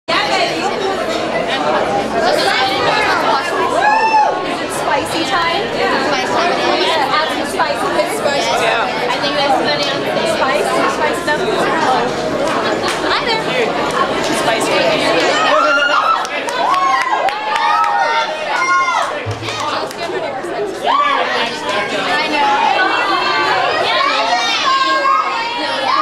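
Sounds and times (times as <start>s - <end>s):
crowd chatter: 0.1s - 26.0s.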